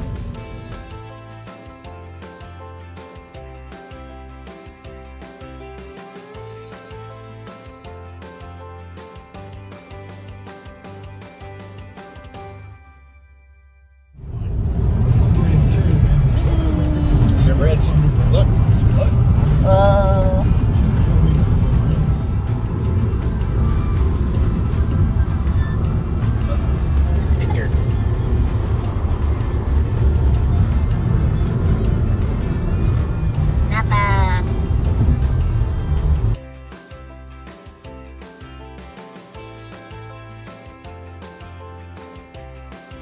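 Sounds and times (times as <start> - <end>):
music: 0.0 - 43.0
car cabin road noise: 14.2 - 36.4.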